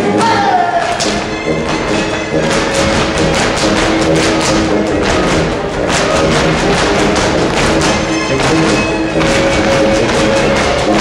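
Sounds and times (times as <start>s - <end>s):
folk dance music: 0.0s - 11.0s
shoes stamping on wooden floor: 0.9s - 11.0s.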